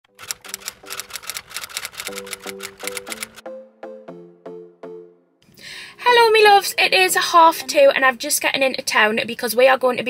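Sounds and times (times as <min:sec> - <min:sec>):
typewriter keystroke clicks: 0:00.2 - 0:03.4.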